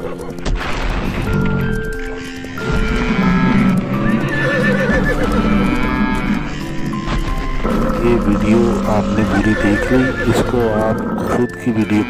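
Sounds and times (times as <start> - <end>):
background music: 0.0 - 12.0
horse whinnying: 2.0 - 12.0.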